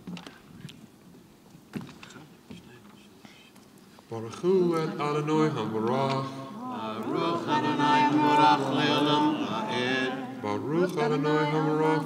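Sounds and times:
soft whispering: 2.6s - 3.6s.

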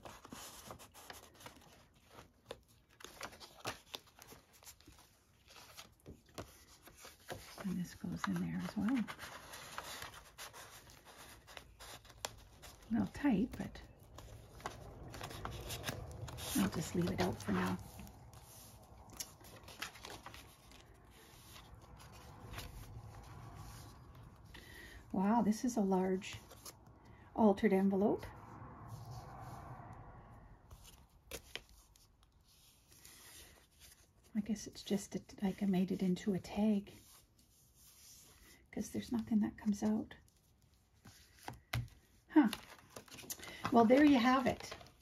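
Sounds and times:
paper pages turning: 0.0s - 25.0s, 26.2s - 26.9s, 30.7s - 34.2s, 40.3s - 45.0s.

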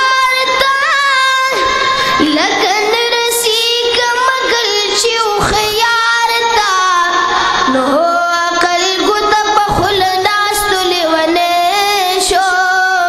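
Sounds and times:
high voice singing: 0.0s - 13.0s.

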